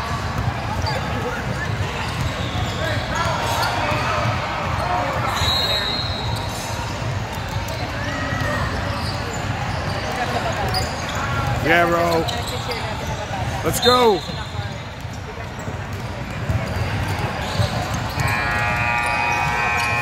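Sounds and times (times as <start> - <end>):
voices in a large gym: 0.0 - 20.0.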